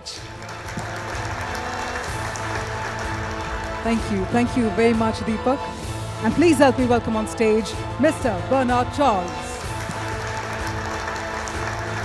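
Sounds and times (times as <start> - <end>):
audience applauding: 0.0 - 4.4, 8.9 - 12.0
music playing: 0.0 - 12.0.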